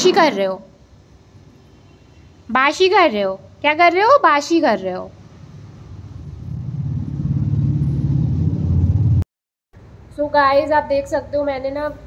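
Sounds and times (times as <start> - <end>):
passing vehicle engine rumble: 5.3 - 9.2.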